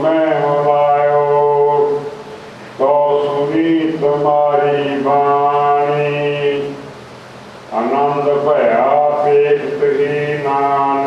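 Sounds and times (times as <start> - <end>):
man chanting: 0.0 - 2.2, 2.8 - 6.9, 7.7 - 11.0.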